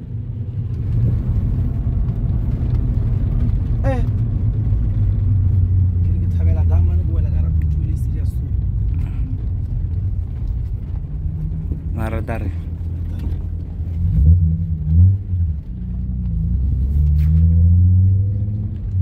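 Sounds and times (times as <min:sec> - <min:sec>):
car engine: 0:00.0 - 0:19.0
road rumble: 0:00.0 - 0:19.0.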